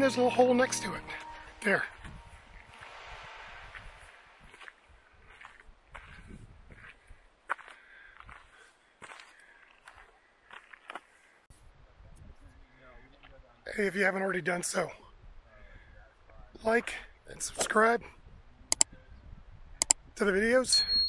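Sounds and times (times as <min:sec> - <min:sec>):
footsteps on sand: 0:01.8 - 0:11.4.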